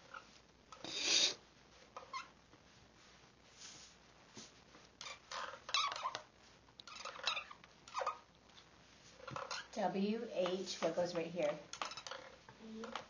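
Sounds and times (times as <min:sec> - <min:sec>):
markers squeaking on whiteboards: 0:00.0 - 0:02.4, 0:05.0 - 0:08.3, 0:09.1 - 0:13.0.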